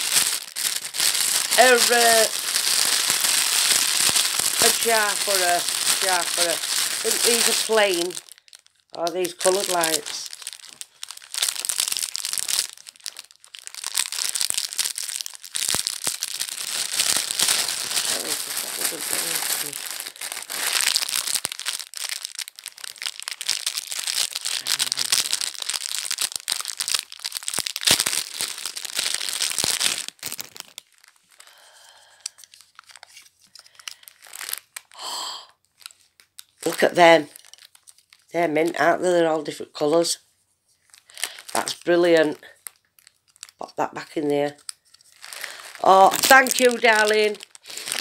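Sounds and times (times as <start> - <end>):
plastic packaging crinkling: 0.0 - 48.0.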